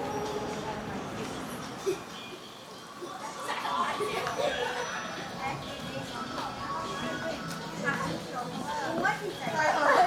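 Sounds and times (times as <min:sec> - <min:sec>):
people talking at once: 0:03.0 - 0:10.0.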